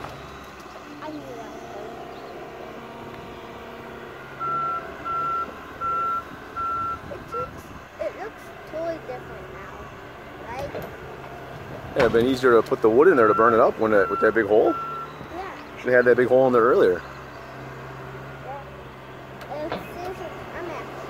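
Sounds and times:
excavator diesel engine running: 0.0s - 21.0s
high alarm beeps: 4.3s - 7.6s, 13.2s - 15.4s.

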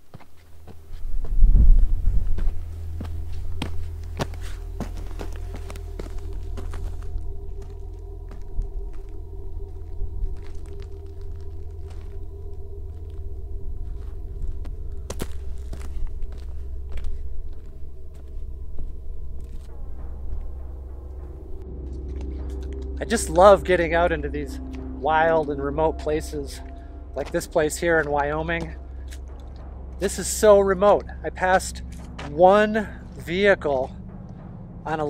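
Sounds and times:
footsteps on sandy dirt and stones: 0.0s - 34.2s
steady low drone: 0.0s - 35.0s.

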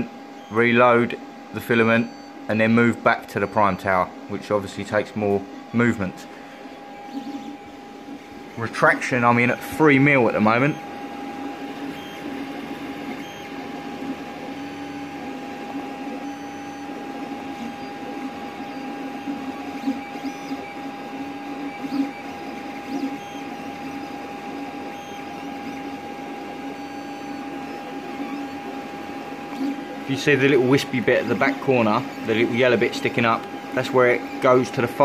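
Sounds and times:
printer motors whirring: 0.0s - 35.0s.

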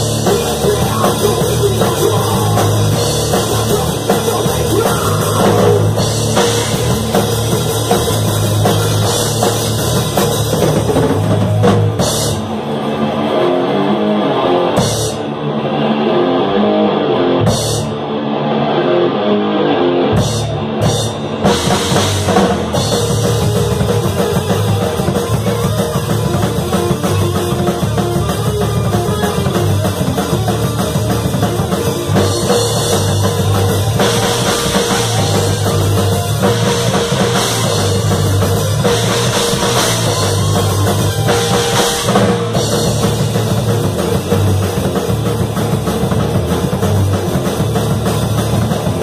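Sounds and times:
distorted electric guitar: 0.0s - 49.0s
thrash metal band playing: 0.0s - 49.0s.

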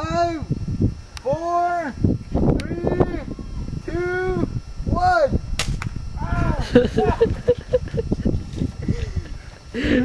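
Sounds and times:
air gun firing crack: 5.6s - 6.0s.

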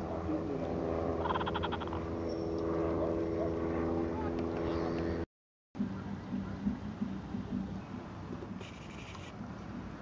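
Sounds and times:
low motor hum: 0.0s - 5.2s.

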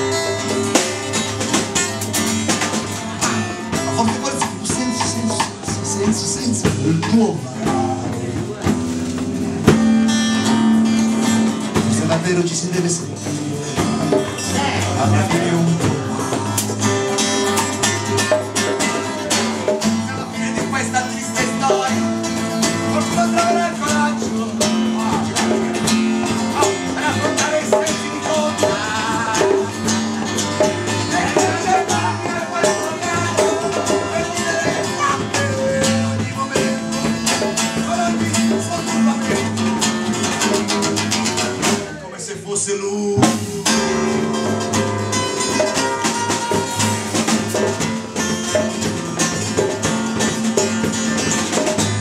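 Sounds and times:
drum kit beat: 0.0s - 42.1s, 43.2s - 52.0s
strummed acoustic guitar: 0.0s - 52.0s.

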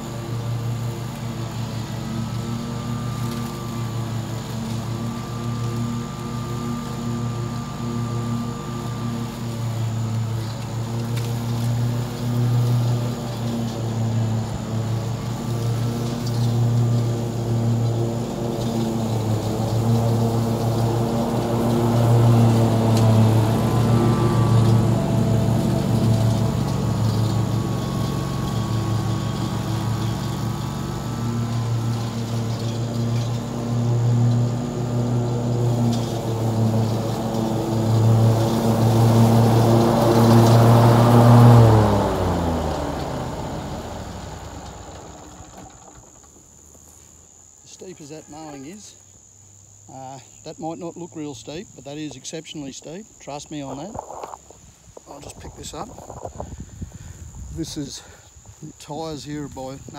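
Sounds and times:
lawn mower engine running: 0.0s - 59.9s.

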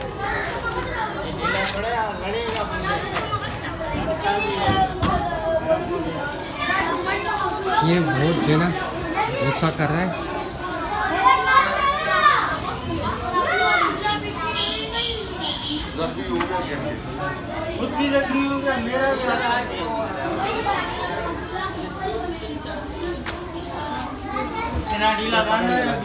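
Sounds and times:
children shouting and chattering: 0.0s - 26.0s
people talking and calling out: 0.0s - 26.0s.

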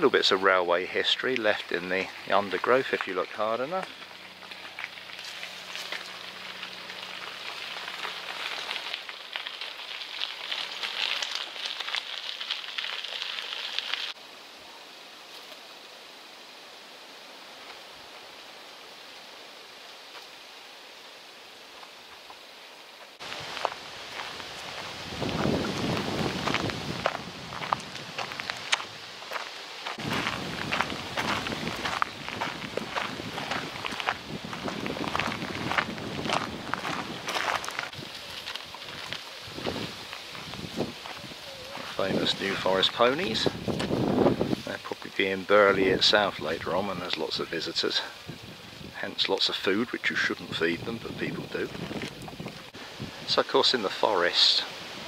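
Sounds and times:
footsteps crunching on gravel: 0.0s - 14.2s, 23.0s - 48.2s, 49.0s - 52.8s
rustling leaves and undergrowth: 0.0s - 55.0s
steady hiss: 0.0s - 55.0s.

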